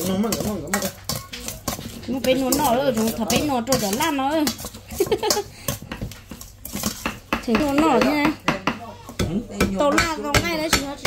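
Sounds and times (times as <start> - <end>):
metal spoon scraping steel bowl: 0.0 - 8.2.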